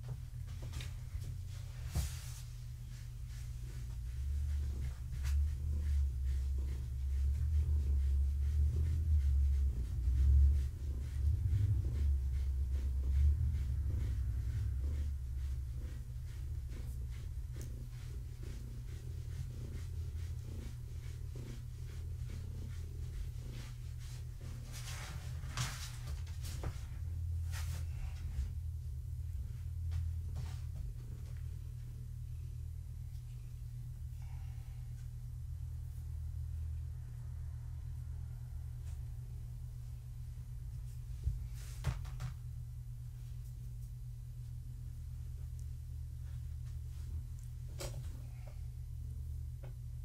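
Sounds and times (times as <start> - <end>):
cat purring: 3.2 - 24.7.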